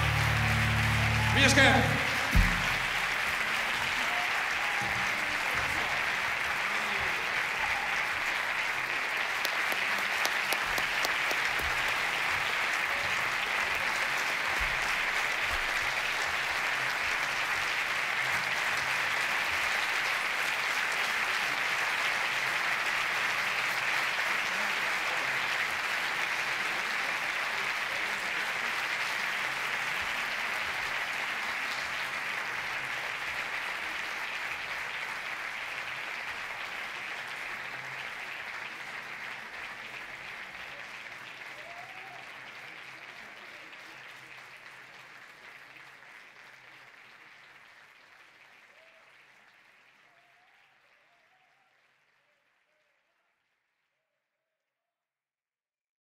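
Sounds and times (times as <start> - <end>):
audience applauding: 0.0 - 53.2
single thump: 2.3 - 3.2.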